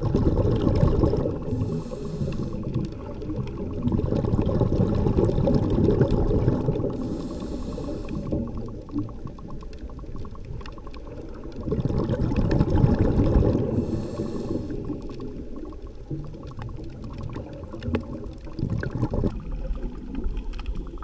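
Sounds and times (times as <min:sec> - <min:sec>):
underwater rumble with bubbling: 0:00.0 - 0:21.0
short hisses: 0:01.5 - 0:02.6, 0:07.0 - 0:08.3, 0:13.8 - 0:14.8.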